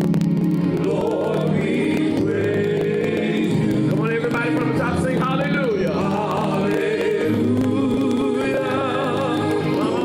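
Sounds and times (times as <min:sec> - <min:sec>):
instrumental accompaniment: 0:00.0 - 0:10.0
gospel singing: 0:00.4 - 0:10.0.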